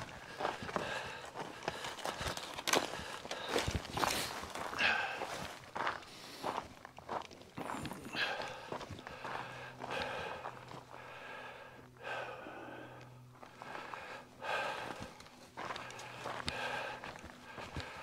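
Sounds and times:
person breathing hard: 0.0 - 6.8, 7.6 - 18.0
footsteps on gravel: 0.0 - 11.5, 12.8 - 18.0.

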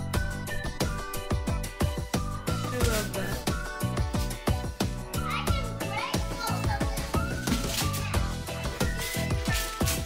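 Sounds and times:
background music with steady beat: 0.0 - 10.0
young children's voices: 5.2 - 8.4.

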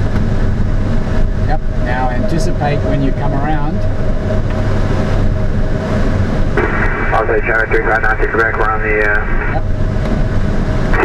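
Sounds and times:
rush of air over cockpit: 0.0 - 11.0.

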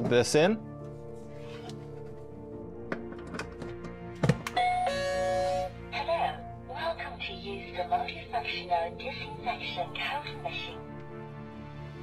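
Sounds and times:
background music: 0.0 - 12.0
recorded voice announcing: 6.0 - 10.8.

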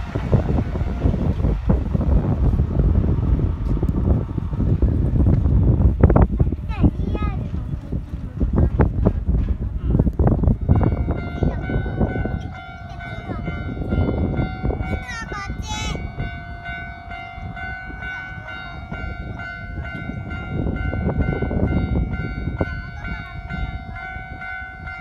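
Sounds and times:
low rumble: 0.0 - 25.0
level crossing bell ringing: 10.6 - 25.0.

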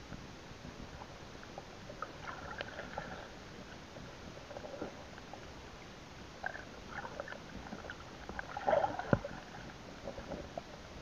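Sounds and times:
underwater bubbling: 0.0 - 11.0
underwater water wash: 0.0 - 11.0.

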